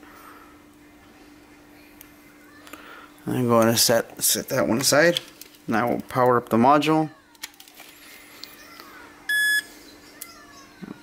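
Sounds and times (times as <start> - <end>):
short electronic beep: 9.3 - 9.7.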